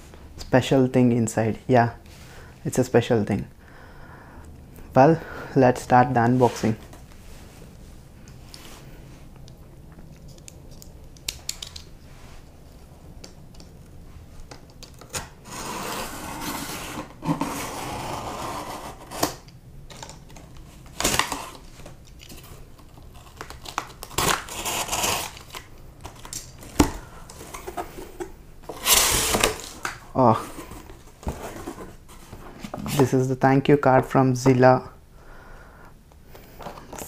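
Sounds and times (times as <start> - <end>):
packing tape tearing: 14.7 - 27.7, 28.7 - 30.0.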